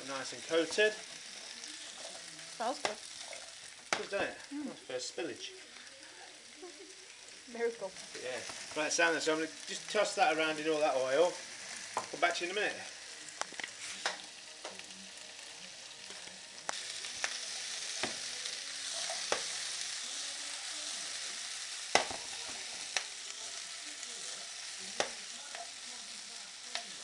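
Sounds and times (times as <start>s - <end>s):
vegetables sizzling in oil: 0.0s - 27.0s
frying pan knocking on hob: 21.9s - 22.3s.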